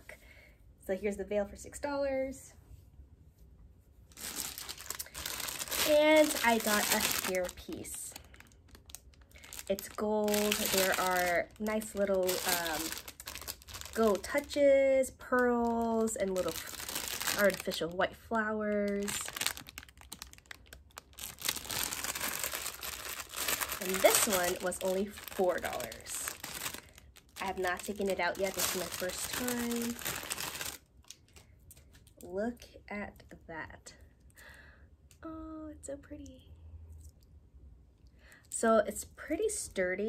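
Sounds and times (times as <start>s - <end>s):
plastic packaging crinkling: 4.1s - 18.0s, 18.7s - 32.2s.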